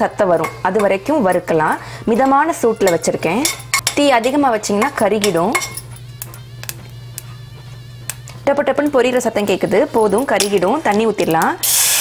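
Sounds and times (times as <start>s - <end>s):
steady low hum: 0.0s - 11.6s.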